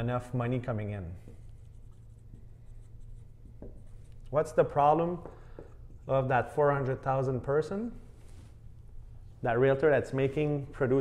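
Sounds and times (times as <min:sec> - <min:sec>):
low room hum: 0:00.0 - 0:11.0
marker writing on whiteboard: 0:01.1 - 0:06.2.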